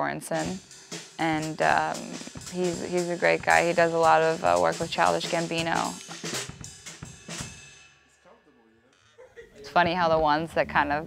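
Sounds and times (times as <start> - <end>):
snare and cymbal strikes: 0.3 - 8.2.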